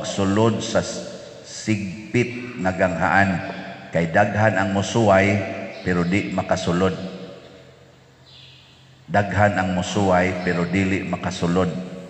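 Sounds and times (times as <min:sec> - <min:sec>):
echo of speech: 0:00.0 - 0:07.4, 0:09.1 - 0:12.0
faint high hiss: 0:00.0 - 0:12.0
steady low hum: 0:00.0 - 0:12.0.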